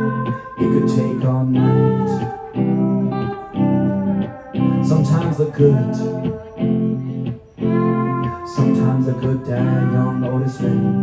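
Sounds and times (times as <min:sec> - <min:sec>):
electric guitar chords strummed: 0:00.0 - 0:11.0.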